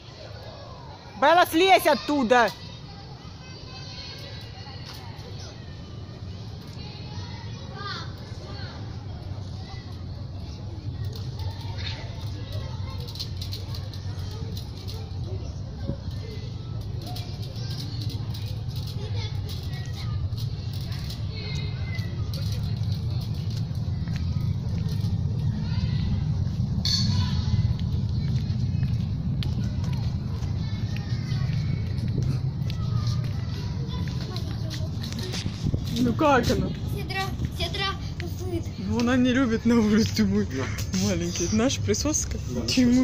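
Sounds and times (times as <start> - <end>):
faint distant voices: 0.0 - 43.0
steady low rumble: 5.2 - 43.0.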